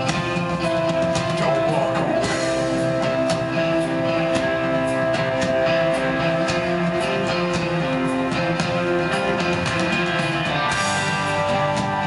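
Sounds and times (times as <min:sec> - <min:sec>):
bass notes: 0:00.0 - 0:12.0
electric guitar notes: 0:00.0 - 0:12.0
steady drum beat: 0:00.0 - 0:12.0.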